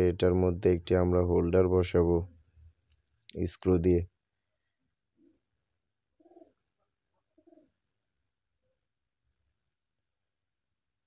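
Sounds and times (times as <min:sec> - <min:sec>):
pigeon cooing: 0:06.2 - 0:07.8.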